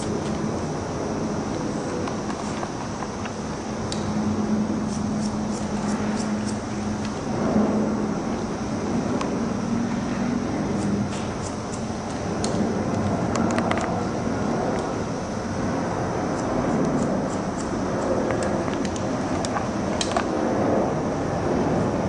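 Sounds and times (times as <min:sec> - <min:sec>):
low hum: 0:00.0 - 0:22.0
rumbling background noise: 0:00.0 - 0:22.0
scissors snipping hair: 0:16.8 - 0:17.7.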